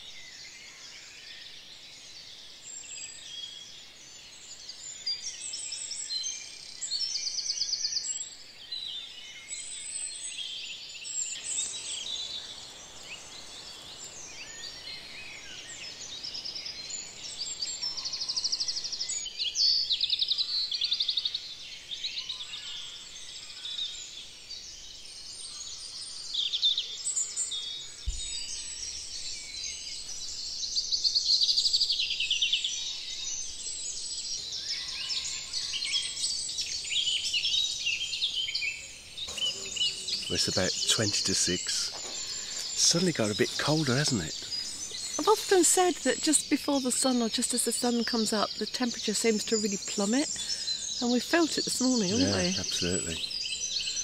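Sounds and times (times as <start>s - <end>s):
blackbird and thrush song: 0.0s - 54.0s
twittering of wrens and robins: 0.0s - 54.0s.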